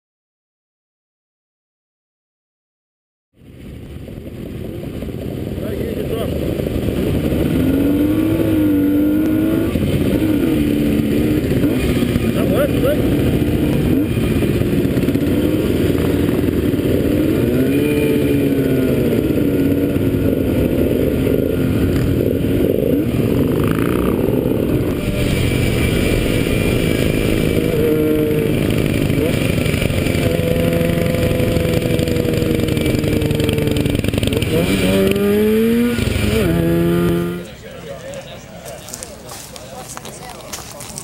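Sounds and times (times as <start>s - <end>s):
motorcycle engine running: 3.4s - 37.6s
wind noise: 3.5s - 37.3s.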